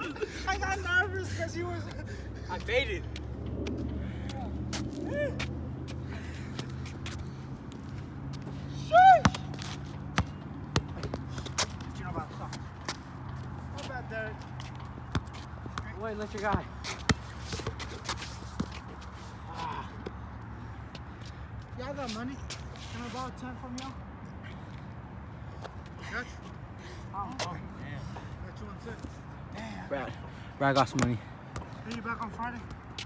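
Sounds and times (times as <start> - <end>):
voices: 0.0 - 3.2
loud shout: 5.0 - 5.4, 8.8 - 9.5
basketball bouncing on concrete: 9.2 - 11.9, 13.8 - 18.8.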